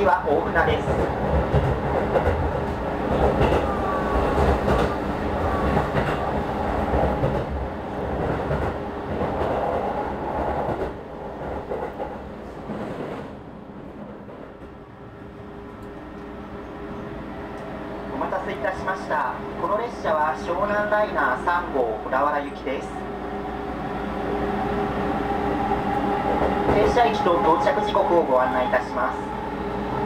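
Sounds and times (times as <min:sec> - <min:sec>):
train wheels rumbling on rail: 0:00.4 - 0:30.0.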